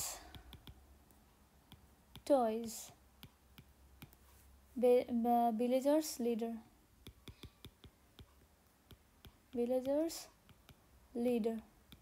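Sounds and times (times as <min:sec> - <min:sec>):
stylus clicking on glass screen: 0:00.2 - 0:04.3, 0:07.0 - 0:12.0.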